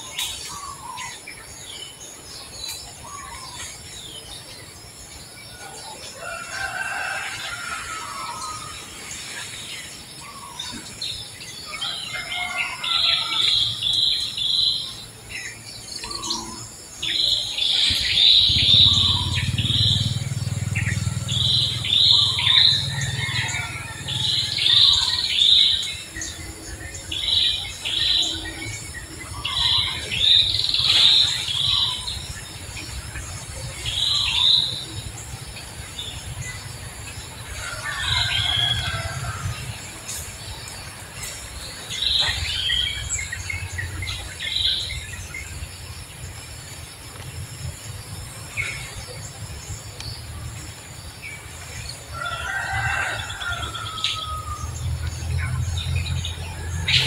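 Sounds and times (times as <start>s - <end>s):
birds chirping: 0.0s - 57.0s
low steady rumble: 17.5s - 25.0s.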